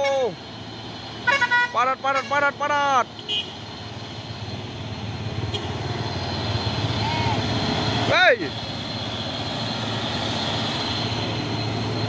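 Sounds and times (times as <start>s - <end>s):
diesel trucks passing: 0.0s - 12.0s.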